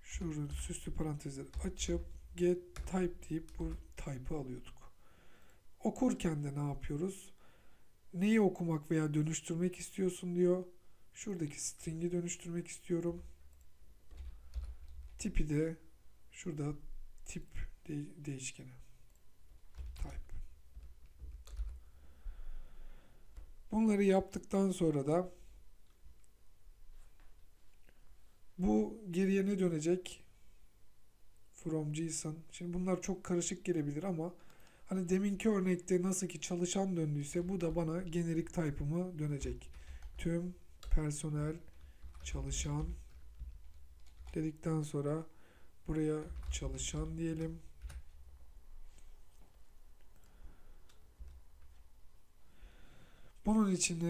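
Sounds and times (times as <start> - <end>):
computer keyboard keystrokes: 2.8 - 3.9, 13.6 - 15.2, 19.7 - 21.8, 41.7 - 44.4, 46.2 - 48.1.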